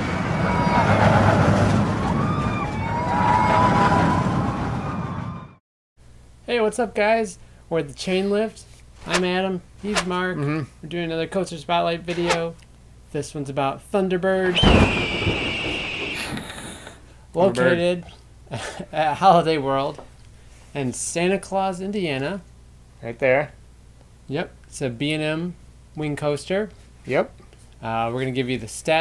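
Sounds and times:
roller coaster rumbling on track: 0:00.0 - 0:05.5, 0:14.6 - 0:16.6.

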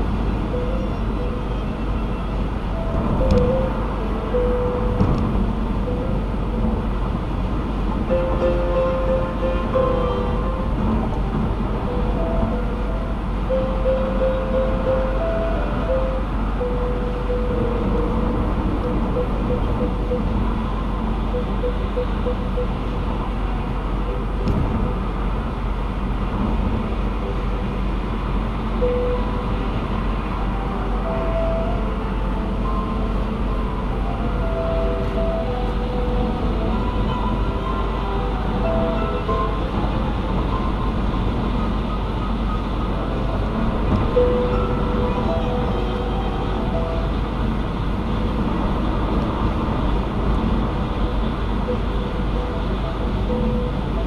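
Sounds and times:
car road and tyre noise: 0:00.0 - 0:54.0.

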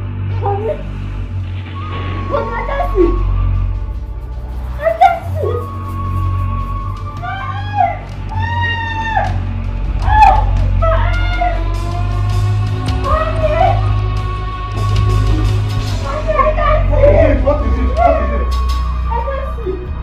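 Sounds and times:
background music score: 0:00.0 - 0:20.0
woman wailing and crying: 0:10.0 - 0:20.0.

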